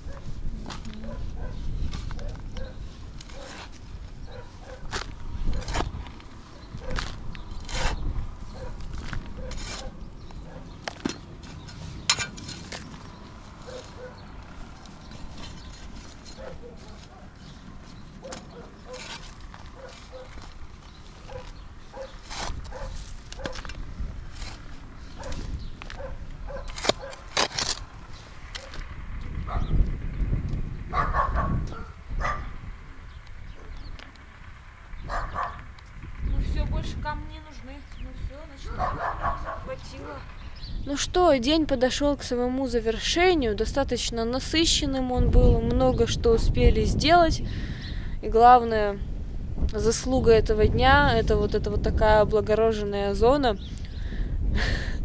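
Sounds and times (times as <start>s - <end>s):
metal spade digging soil: 1.7s - 28.9s.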